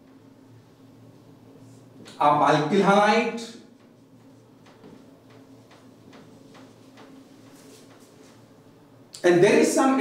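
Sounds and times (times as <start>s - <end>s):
low room hum: 0.0s - 10.0s
marker pen writing on whiteboard: 3.7s - 8.5s.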